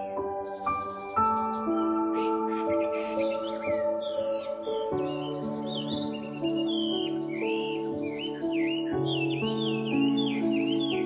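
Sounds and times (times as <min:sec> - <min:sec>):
birds chirping: 0:00.0 - 0:11.0
calm instrumental music: 0:00.0 - 0:11.0.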